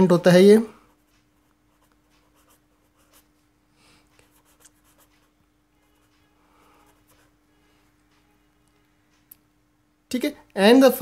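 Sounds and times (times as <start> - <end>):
faint steady hum: 0.0 - 11.0
marker pen scratching on paper: 0.9 - 3.4, 4.2 - 7.4.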